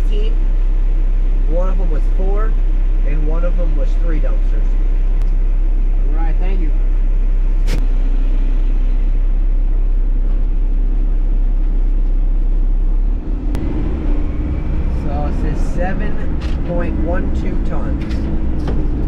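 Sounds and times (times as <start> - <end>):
diesel truck engine: 0.0 - 19.0.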